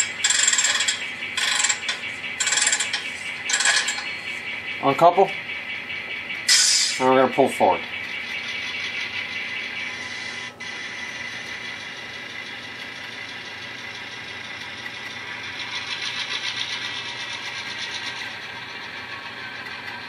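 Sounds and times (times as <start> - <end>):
model train diesel engine sound: 0.0 - 20.0.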